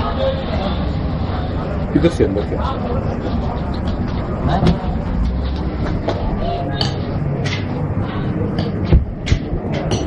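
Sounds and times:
busy restaurant kitchen rumbling: 0.0 - 10.0.

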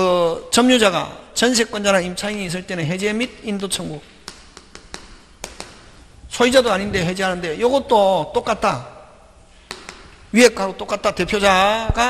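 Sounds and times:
chalk tapping on chalkboard: 4.2 - 6.0, 9.6 - 10.2.

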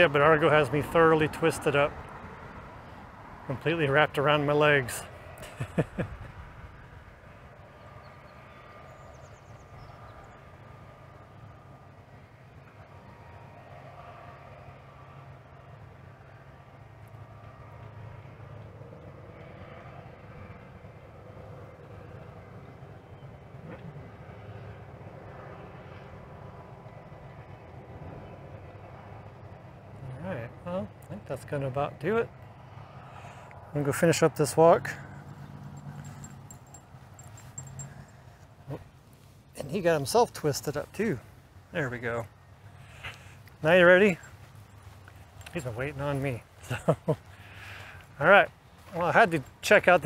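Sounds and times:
low rumble of distant engines: 0.0 - 50.0.

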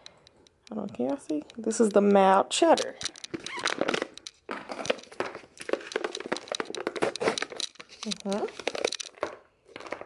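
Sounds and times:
foil seal crinkling and crackling: 0.9 - 10.0.

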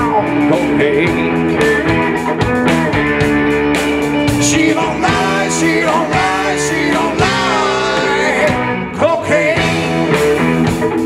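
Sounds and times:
electric guitar: 0.0 - 11.0
live blues-rock band: 0.0 - 11.0.

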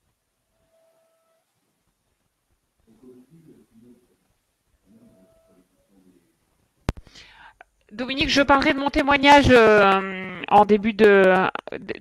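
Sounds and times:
faint voice murmuring over phone: 2.9 - 4.2, 4.8 - 6.4.

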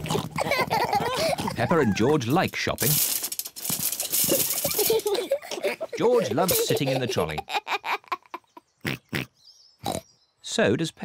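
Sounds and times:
cartoon pig snorts: 8.8 - 10.0.

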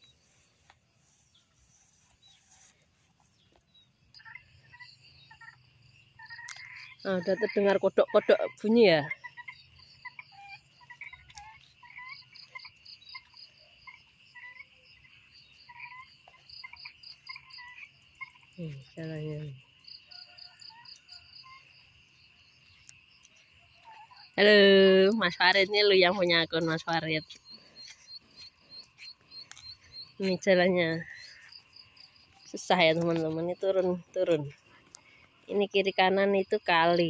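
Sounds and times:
footsteps on dirt path: 0.0 - 3.9, 25.1 - 35.4
frogs calling: 4.0 - 37.0.

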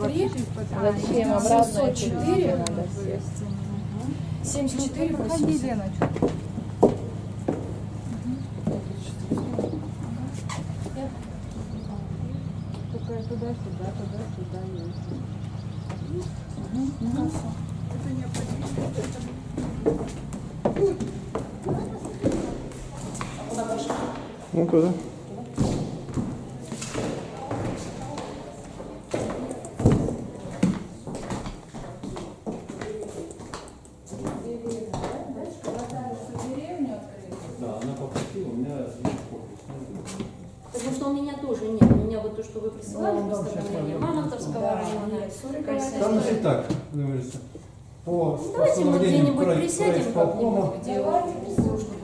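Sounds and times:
indistinct talk of people: 0.0 - 52.0
steady low hum: 0.0 - 52.0
footsteps on hard floor: 5.3 - 11.3, 17.2 - 36.7.

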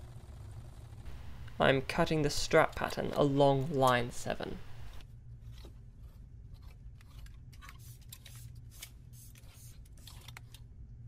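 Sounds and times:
low room hum: 0.0 - 11.0
scissors snipping paper: 5.4 - 10.6.

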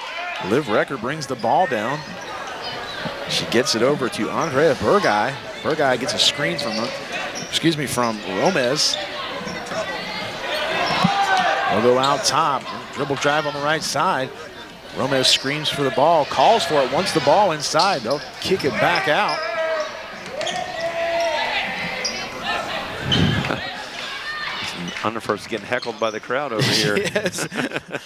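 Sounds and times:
crowd noise in large gym: 0.0 - 28.0
spectators shouting: 4.6 - 25.0.

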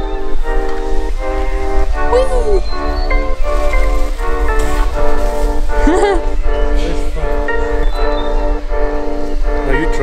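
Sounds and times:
sustained chords with bell tones: 0.0 - 10.0.

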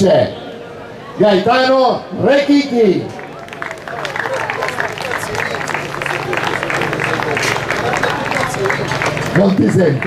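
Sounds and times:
voices: 2.3 - 10.0
crowd applauding: 3.0 - 10.0.

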